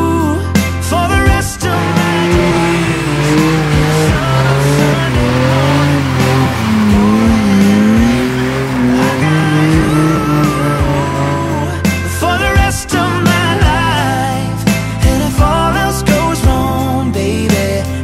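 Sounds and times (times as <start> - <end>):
car engine at high revs: 1.4 - 12.6
tyres squealing: 1.6 - 11.8.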